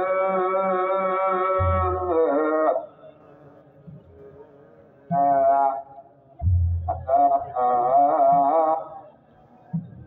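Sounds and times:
hymn sung in long notes: 0.0s - 6.2s, 6.9s - 9.1s.

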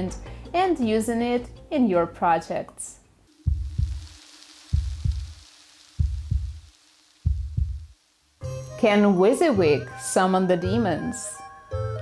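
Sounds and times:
heartbeat double beats: 3.4s - 4.1s, 4.7s - 5.4s, 6.0s - 8.0s.

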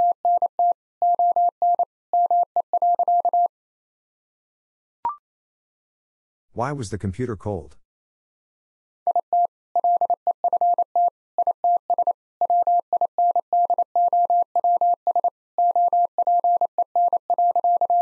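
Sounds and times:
morse code beeps: 0.0s - 3.5s, 9.1s - 18.0s.

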